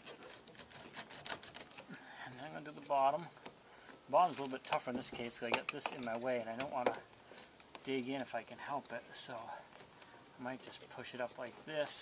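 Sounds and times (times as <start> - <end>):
razor blade scratching: 0.0 - 1.8.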